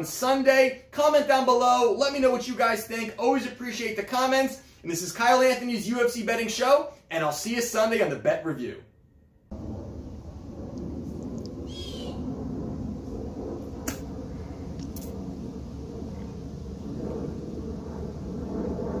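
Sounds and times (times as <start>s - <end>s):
steady low rumble: 9.4s - 19.0s
bird chirp: 11.6s - 12.2s.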